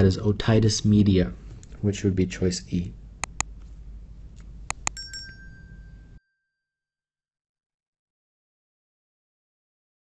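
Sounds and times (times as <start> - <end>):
mouse clicks: 3.2 - 3.5, 4.4 - 5.0
notification bell ding: 4.8 - 6.7.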